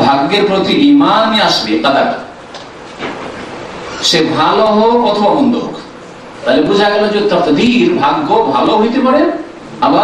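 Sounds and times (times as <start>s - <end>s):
man lecturing: 0.0s - 2.4s, 4.0s - 10.0s
recording hiss and rumble: 0.0s - 10.0s.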